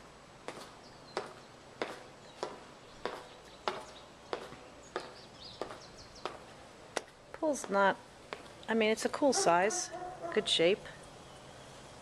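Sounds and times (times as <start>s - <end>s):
footsteps on concrete: 0.0s - 10.6s.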